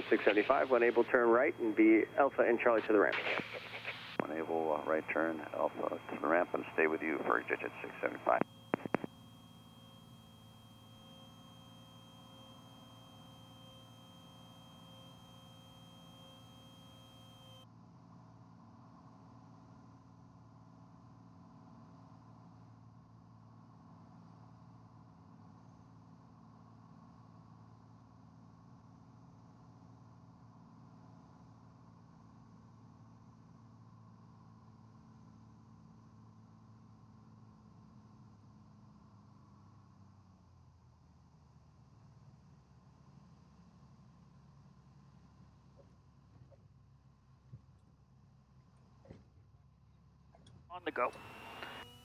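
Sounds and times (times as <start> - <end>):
faint high hiss and whine: 0.0 - 17.6, 50.7 - 52.0
propeller aircraft engine drone: 0.0 - 17.6, 50.8 - 52.0
faint aircraft engine drone: 0.0 - 41.2, 50.4 - 52.0.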